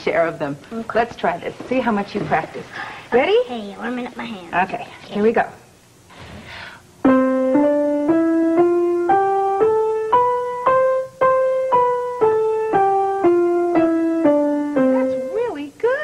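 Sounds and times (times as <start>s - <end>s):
piano scale single notes: 7.0s - 15.6s.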